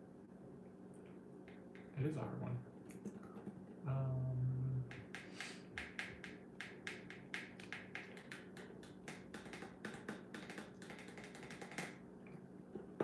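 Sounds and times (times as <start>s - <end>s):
faint steady hum: 0.0s - 13.0s
light sharp taps and clicks: 1.0s - 2.0s, 4.9s - 13.0s.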